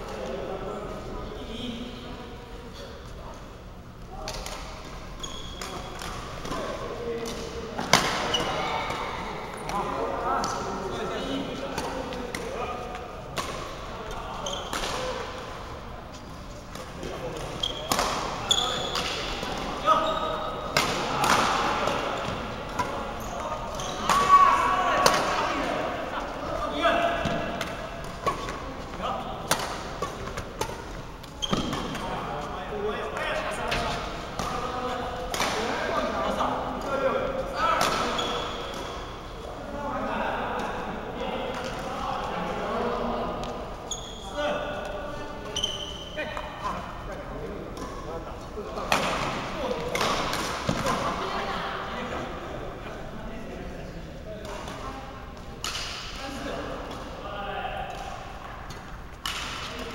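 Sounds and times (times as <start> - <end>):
voices: 0.0 - 59.9
rackets hitting shuttlecock: 16.7 - 19.7, 20.6 - 23.0, 27.2 - 32.0, 33.7 - 35.8, 48.9 - 51.1, 57.9 - 59.8.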